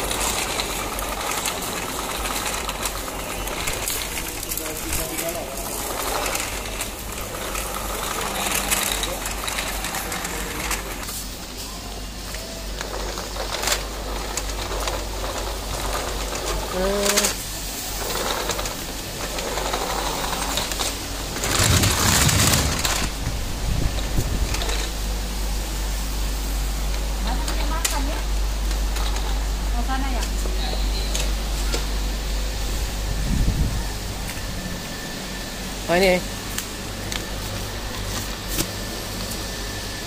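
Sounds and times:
steady low hum: 0:00.0 - 0:40.0
rustling burst: 0:18.0 - 0:25.0.

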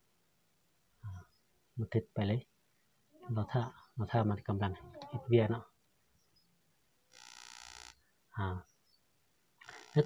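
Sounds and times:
person saying ah: 0:04.6 - 0:05.4.

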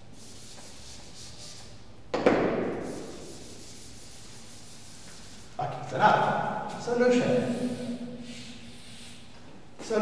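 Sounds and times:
duster rubbing on chalkboard: 0:00.0 - 0:01.8, 0:02.8 - 0:05.6, 0:07.3 - 0:09.2.

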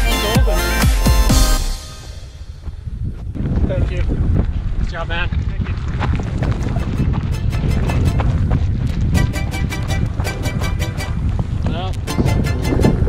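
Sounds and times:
music with steady beat: 0:00.0 - 0:02.6, 0:09.2 - 0:11.2, 0:12.1 - 0:13.0
wind buffeting microphone: 0:02.5 - 0:13.0.

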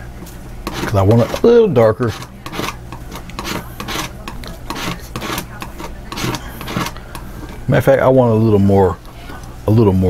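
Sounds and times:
painting tool scraping paint: 0:00.6 - 0:07.5.

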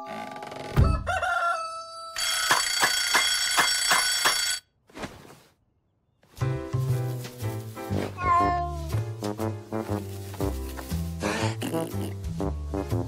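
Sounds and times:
rooster crowing: 0:00.8 - 0:02.3
bell alarm clock ringing: 0:02.2 - 0:04.6
music: 0:06.3 - 0:13.0.

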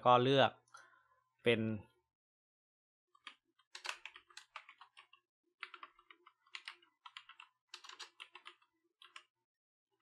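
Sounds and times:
faint keyboard typing: 0:03.1 - 0:09.4.

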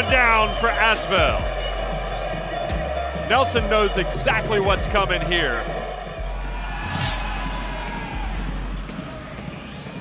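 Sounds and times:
background music with low bass: 0:00.0 - 0:10.0
whoosh: 0:06.6 - 0:07.6.

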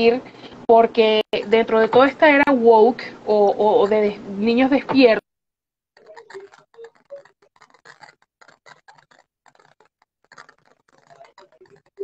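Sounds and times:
faint irregular clicking: 0:06.0 - 0:12.0.

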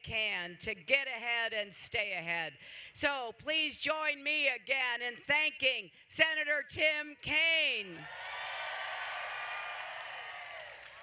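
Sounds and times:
crowd cheering and applauding: 0:08.0 - 0:11.0.

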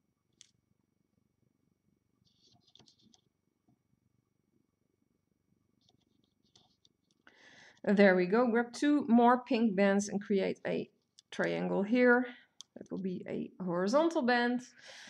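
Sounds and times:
breath drawn: 0:07.2 - 0:07.9
person speaking: 0:07.8 - 0:14.8.

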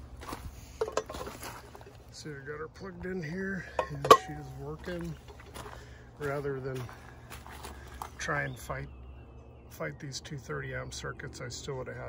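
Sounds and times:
rustling handling noise: 0:00.0 - 0:02.2.

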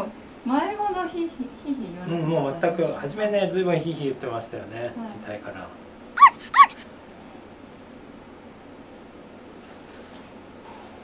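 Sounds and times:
dog yelping: 0:06.2 - 0:06.9.

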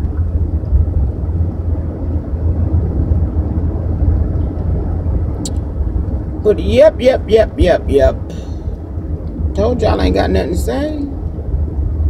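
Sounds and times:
road and engine rumble: 0:00.0 - 0:12.0.

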